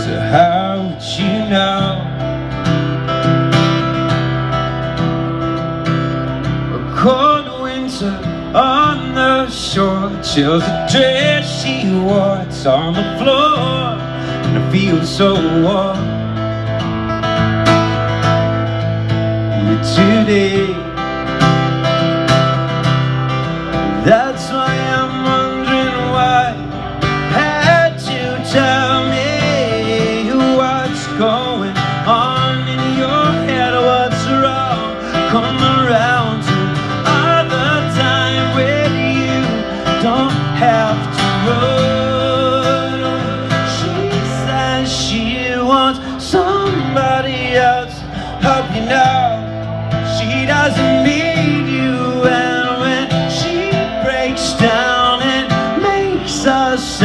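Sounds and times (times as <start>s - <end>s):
amplified acoustic guitar: 0.0s - 57.0s.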